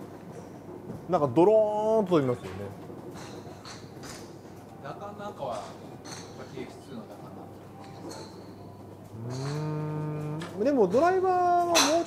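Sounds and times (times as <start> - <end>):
man humming: 9.1 - 10.6.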